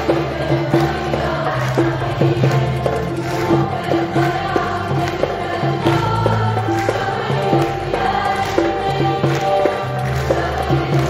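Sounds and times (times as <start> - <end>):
bass and percussion: 0.0 - 11.0
choir singing: 0.0 - 11.0.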